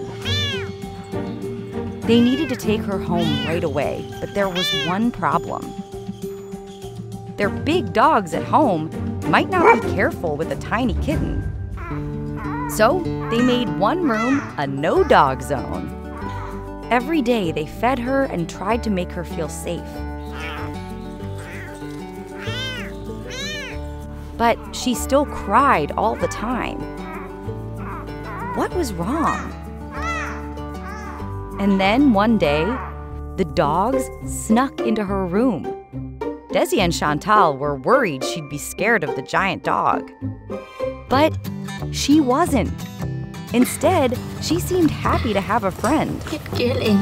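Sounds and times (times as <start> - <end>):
background music: 0.0 - 47.0
kitten meowing: 0.1 - 0.8, 2.2 - 3.6, 4.4 - 4.9, 20.3 - 20.7, 22.4 - 23.8.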